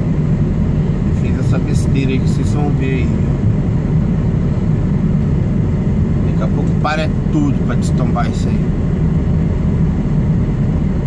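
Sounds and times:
diesel truck engine rumbling: 0.0s - 11.0s.

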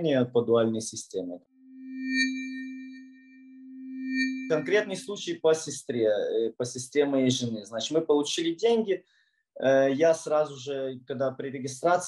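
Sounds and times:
electronic low tone with bells: 1.6s - 5.4s.

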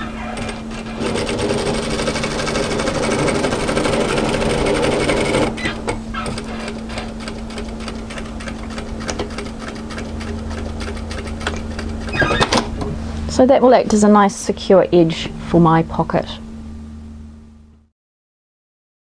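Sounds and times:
sewing machine stitching: 0.0s - 12.6s
motor hum: 0.0s - 17.9s.

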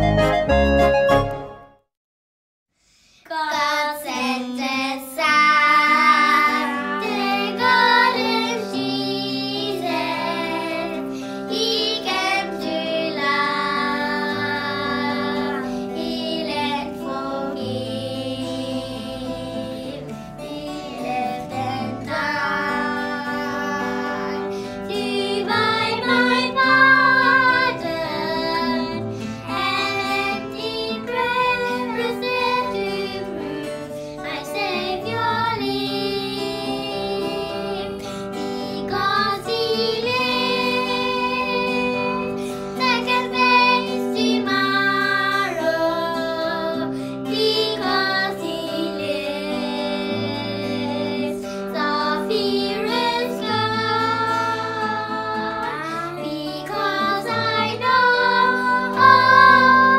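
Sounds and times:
children singing together: 3.3s - 59.9s.

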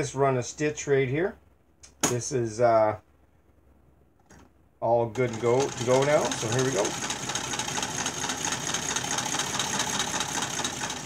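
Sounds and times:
man's voice: 4.8s - 7.0s.

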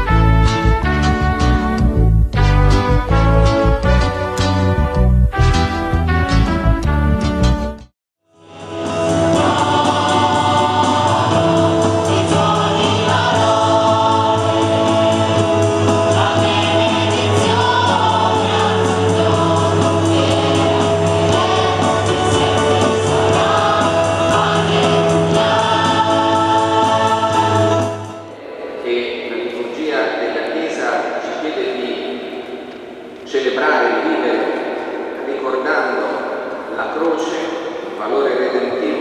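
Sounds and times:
choir singing a hymn: 8.4s - 38.6s.

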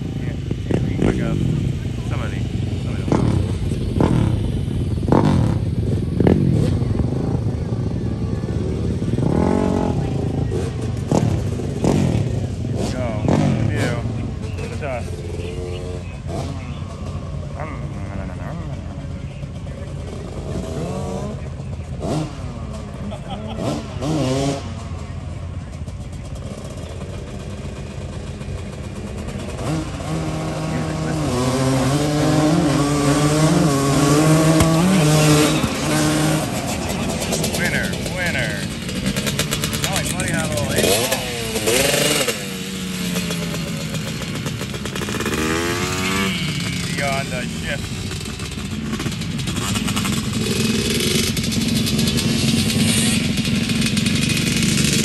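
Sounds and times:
voices: 0.0s - 54.1s
engine revving: 0.0s - 55.0s
vehicle engines running: 0.0s - 55.0s.

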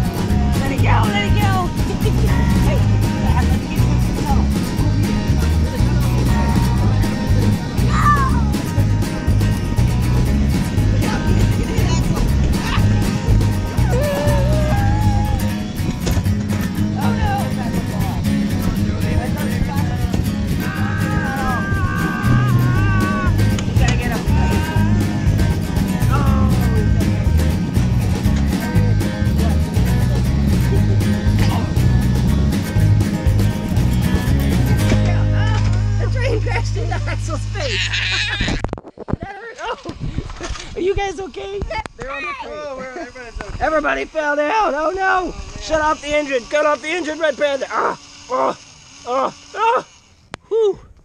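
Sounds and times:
faint voices: 0.0s - 32.2s
upbeat instrumental music: 0.0s - 37.7s.

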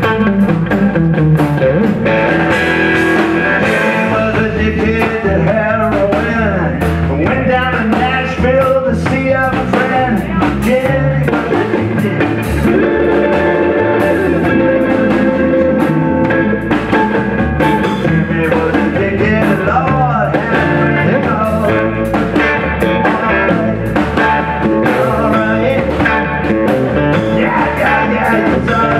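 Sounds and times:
drum kit: 0.0s - 28.9s
electric guitar bending notes: 0.0s - 28.9s
upright bass: 0.0s - 28.9s.

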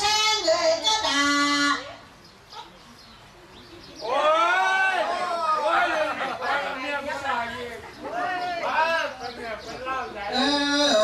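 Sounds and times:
person singing unaccompanied: 0.0s - 1.8s, 10.3s - 11.0s.

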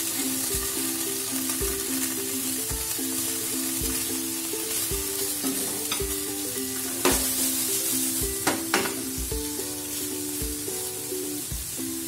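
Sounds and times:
cheese cubes sizzling in a pan: 0.0s - 12.0s
soft background music: 0.0s - 12.0s
spatula knocking against pan: 8.4s - 9.4s.

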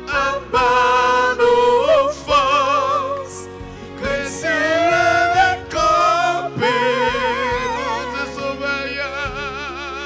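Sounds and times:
held musical accompaniment: 0.0s - 10.0s
person singing with vibrato: 0.0s - 10.0s.

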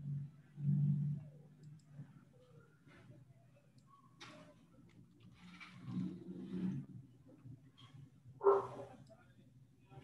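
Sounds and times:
computer mouse clicks: 1.6s - 2.0s.

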